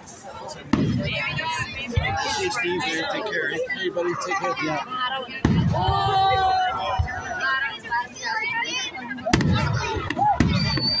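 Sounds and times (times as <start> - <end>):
fireworks crackling: 9.3 - 11.0.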